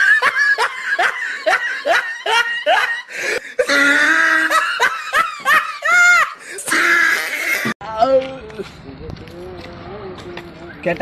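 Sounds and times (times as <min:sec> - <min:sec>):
high-pitched laughter: 0:00.0 - 0:07.7.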